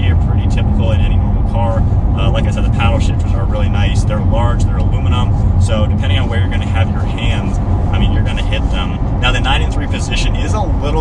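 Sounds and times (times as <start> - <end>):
car engine and tyre drone: 0.0 - 11.0
man talking: 0.0 - 11.0.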